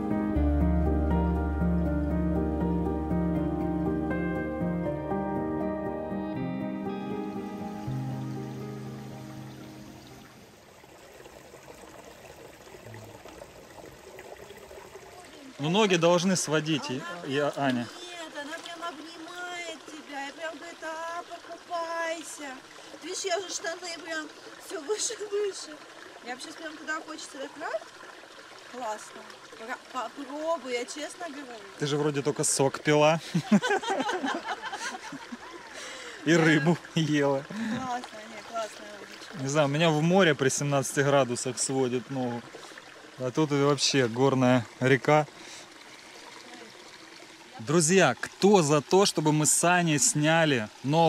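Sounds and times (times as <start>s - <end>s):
background music: 0.0s - 10.3s
stream trickling over stones: 6.9s - 51.0s
person talking and laughing: 33.2s - 37.9s.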